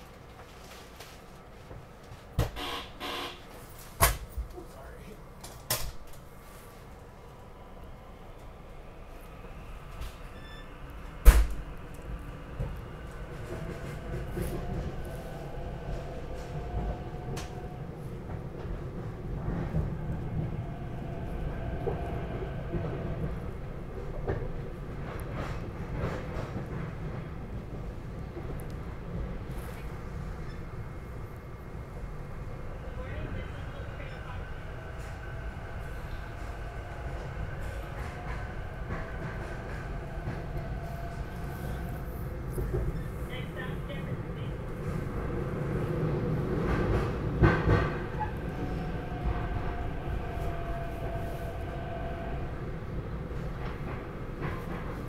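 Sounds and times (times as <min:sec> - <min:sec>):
train rumble inside passenger car: 0:00.0 - 0:55.0.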